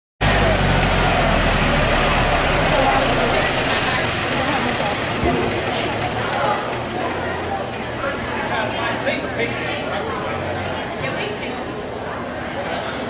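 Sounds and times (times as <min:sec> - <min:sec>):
tractor engines droning: 0:00.2 - 0:12.8
crowd chatter: 0:00.2 - 0:13.0.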